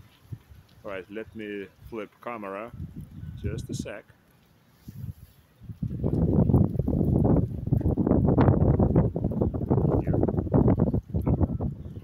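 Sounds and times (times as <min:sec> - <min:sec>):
microphone rumbling and crackling: 0:00.0 - 0:04.0, 0:04.8 - 0:12.0.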